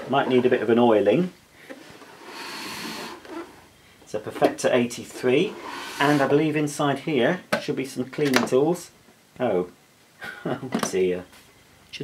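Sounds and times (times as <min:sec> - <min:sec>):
vacuum cleaner scraping over carpet: 0:02.0 - 0:03.5, 0:05.4 - 0:06.4.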